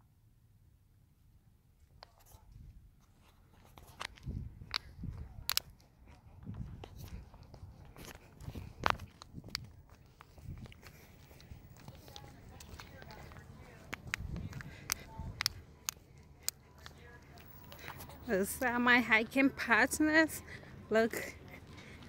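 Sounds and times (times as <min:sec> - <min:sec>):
footsteps on asphalt: 0:02.5 - 0:22.0.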